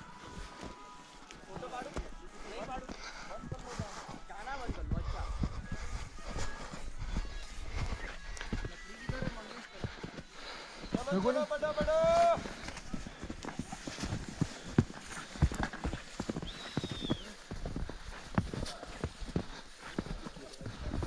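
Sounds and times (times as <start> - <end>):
footsteps crunching in snow: 0.0 - 21.0.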